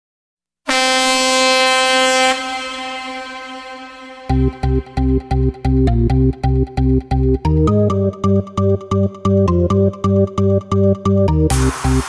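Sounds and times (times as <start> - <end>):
air horn blast: 0.7 - 5.2.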